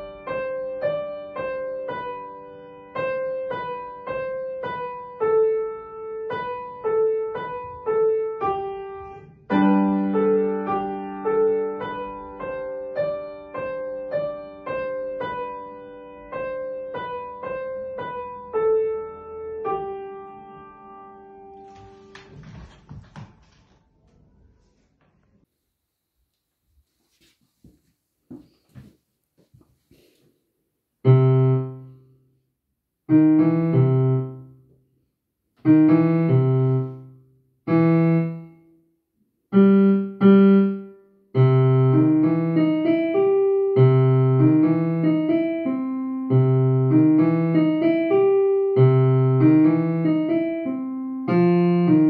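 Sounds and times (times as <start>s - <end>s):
upright piano melody: 0.0s - 22.4s, 31.0s - 32.2s, 33.1s - 34.7s, 35.6s - 38.7s, 39.5s - 52.0s
shuffling and soft thumps: 26.7s - 30.4s.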